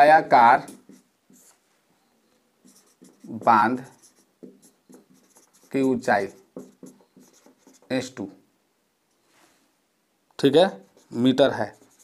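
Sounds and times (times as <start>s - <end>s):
marker pen scratching on whiteboard: 0.6s - 1.6s, 2.6s - 8.1s, 10.8s - 12.0s.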